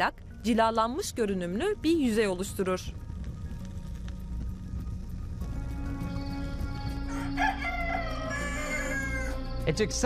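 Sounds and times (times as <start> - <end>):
soft background music: 0.0 - 10.0
rooster crowing: 7.0 - 9.4.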